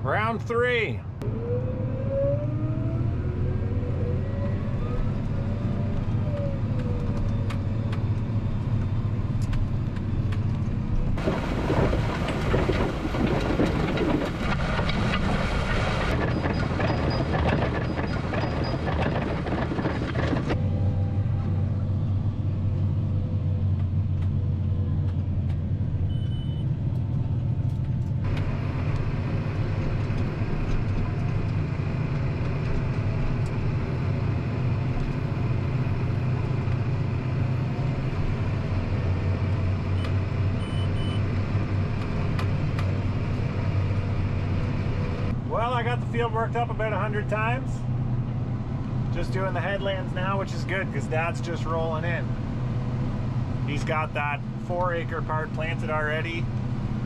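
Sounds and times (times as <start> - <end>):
tractor engine running: 5.1 - 57.0.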